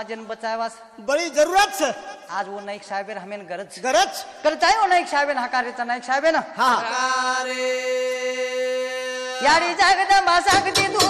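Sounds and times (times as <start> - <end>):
person singing: 6.8 - 11.0.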